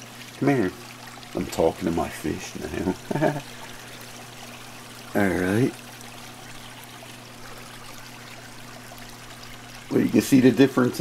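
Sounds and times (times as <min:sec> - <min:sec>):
aquarium water trickling: 0:00.0 - 0:11.0
low electrical hum: 0:00.0 - 0:11.0.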